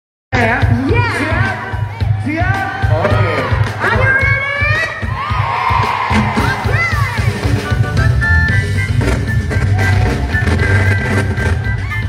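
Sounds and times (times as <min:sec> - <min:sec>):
crowd cheering and shouting: 0:00.4 - 0:08.2, 0:09.1 - 0:12.0
live band over loudspeakers: 0:00.4 - 0:12.0.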